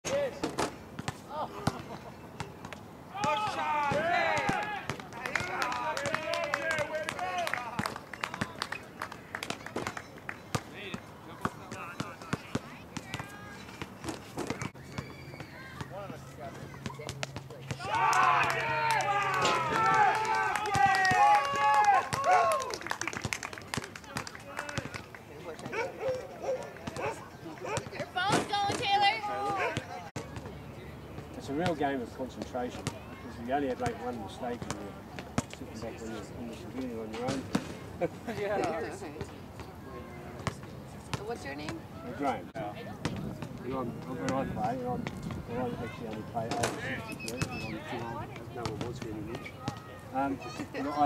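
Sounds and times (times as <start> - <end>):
players calling out: 1.2 - 9.0, 10.6 - 30.8, 43.7 - 51.0.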